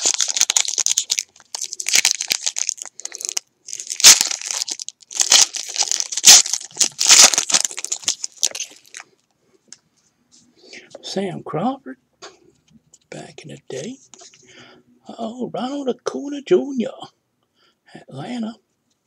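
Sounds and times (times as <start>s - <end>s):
wrapper tearing and crinkling: 0.0s - 9.2s.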